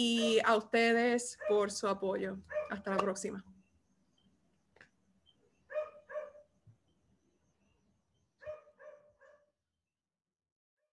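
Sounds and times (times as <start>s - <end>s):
faint dog barking: 0.1s - 0.5s, 1.3s - 1.7s, 2.5s - 2.8s, 5.7s - 6.5s, 8.4s - 9.6s.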